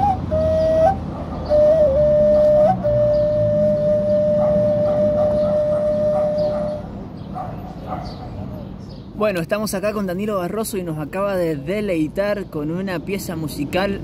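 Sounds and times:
end-blown flute playing: 0:00.0 - 0:06.8
low street rumble: 0:00.0 - 0:14.0.

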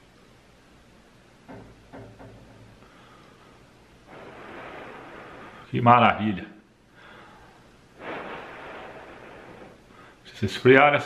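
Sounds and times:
person blowing breath: 0:02.8 - 0:05.7, 0:07.0 - 0:10.2.

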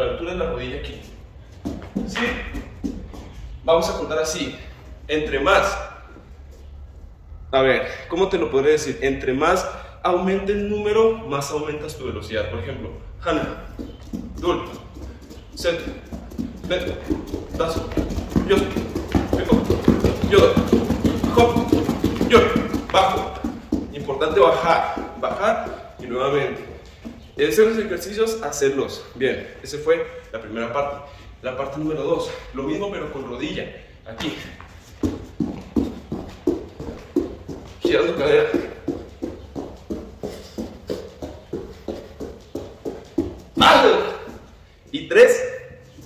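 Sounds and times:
feet thudding on foam mat: 0:01.4 - 0:04.1, 0:13.5 - 0:27.8, 0:34.2 - 0:44.7
man counting aloud: 0:43.5 - 0:45.9.

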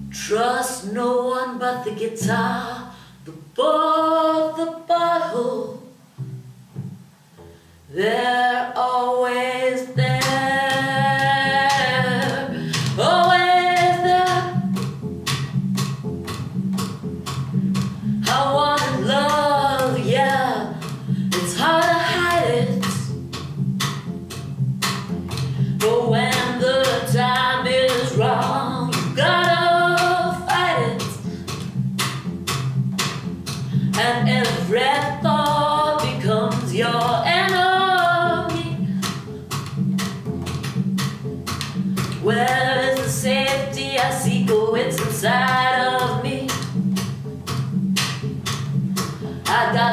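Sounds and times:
plucked double bass: 0:00.0 - 0:49.9
woman singing: 0:00.1 - 0:03.0, 0:03.6 - 0:05.9, 0:07.9 - 0:14.7, 0:18.2 - 0:23.1, 0:25.8 - 0:31.3, 0:33.9 - 0:39.0, 0:42.2 - 0:46.7, 0:49.4 - 0:49.9.

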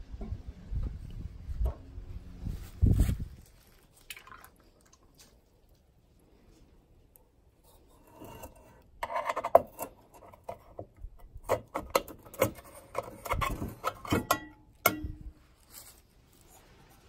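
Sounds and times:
screwdriver scraping metal bowl: 0:07.6 - 0:15.0.

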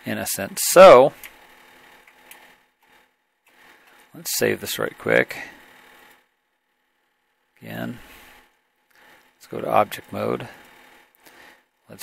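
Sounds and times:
man speaking: 0:00.0 - 0:01.2, 0:04.2 - 0:05.5, 0:07.6 - 0:08.1, 0:09.4 - 0:10.6.

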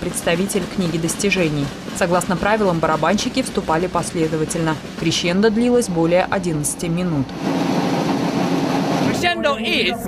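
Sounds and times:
marching drums rolling: 0:00.0 - 0:10.0
man speaking: 0:09.1 - 0:10.0.

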